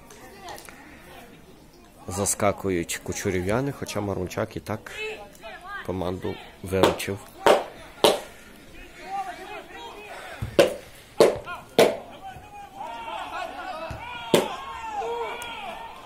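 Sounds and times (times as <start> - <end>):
players shouting: 4.8 - 16.0.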